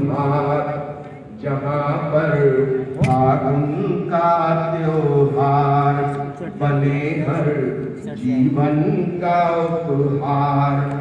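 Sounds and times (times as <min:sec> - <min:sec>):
man singing chant-like melody: 0:00.0 - 0:11.0.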